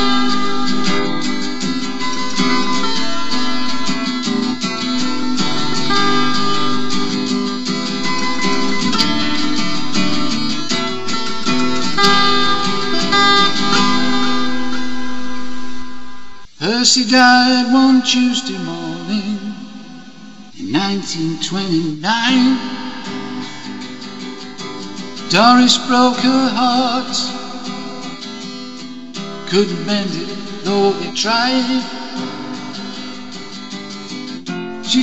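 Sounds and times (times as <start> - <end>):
guitar strumming chords: 0.0 - 35.0.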